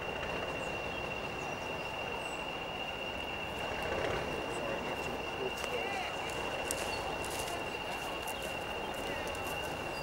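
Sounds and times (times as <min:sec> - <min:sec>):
diesel locomotive running: 0:00.0 - 0:10.0
steady high whine: 0:00.0 - 0:10.0.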